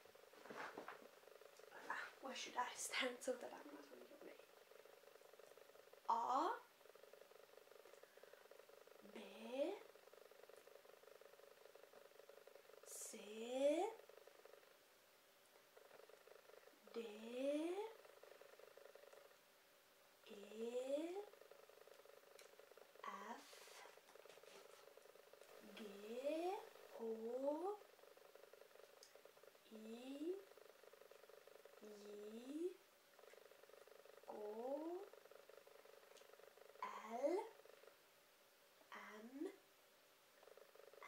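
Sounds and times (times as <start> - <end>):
faint steady hum: 0.0 - 41.0
woman saying letters: 9.0 - 9.8, 16.9 - 17.9, 23.1 - 23.6, 38.9 - 39.6.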